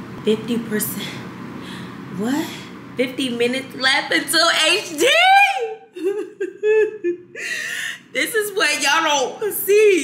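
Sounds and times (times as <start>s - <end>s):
woman whimpering laugh: 5.8s - 8.0s.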